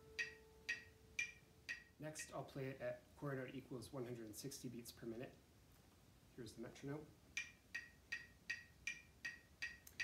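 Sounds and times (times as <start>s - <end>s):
metronome ticking: 0.0s - 2.4s, 7.3s - 10.0s.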